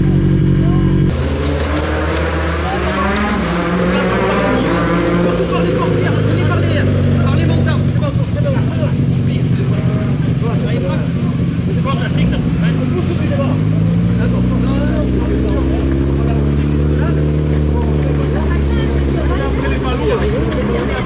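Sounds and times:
car engine idling and revving: 0.0s - 21.0s
crowd calling out: 1.1s - 7.6s.

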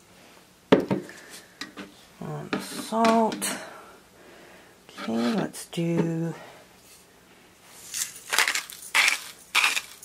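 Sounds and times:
salt grinder crunching: 7.9s - 10.0s.

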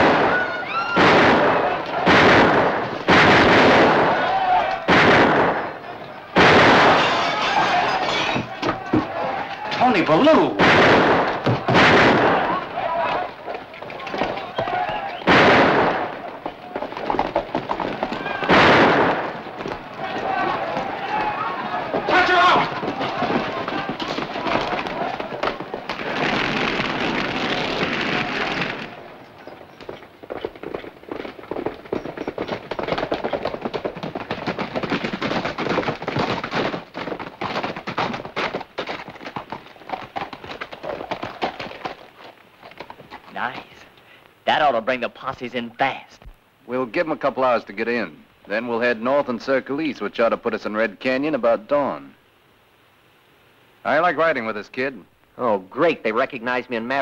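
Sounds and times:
gunshots: 0.0s - 9.1s, 9.7s - 13.3s, 13.9s - 29.3s
fire rushing: 0.0s - 31.9s
galloping horse hooves: 0.0s - 44.0s
riders shouting: 4.0s - 4.9s, 5.7s - 10.6s, 11.4s - 15.3s, 18.0s - 18.6s, 19.3s - 26.4s.

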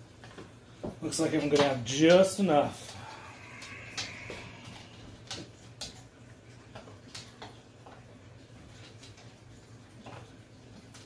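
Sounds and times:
low steady hum: 2.5s - 11.0s.

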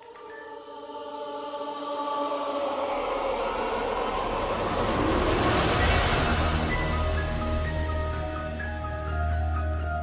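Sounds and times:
choir-like chords: 0.0s - 9.5s
rising whoosh of noise: 1.1s - 8.4s
low bass drone: 2.7s - 8.6s.

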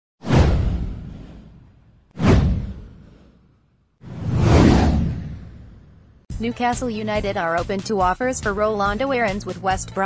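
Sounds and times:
whoosh sweeping downward: 4.0s - 6.0s
deep rumble: 4.0s - 6.3s.

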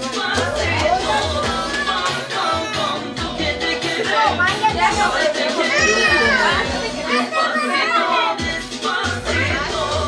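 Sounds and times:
dance music with singing: 0.0s - 10.0s
children and adults talking: 0.3s - 9.7s.

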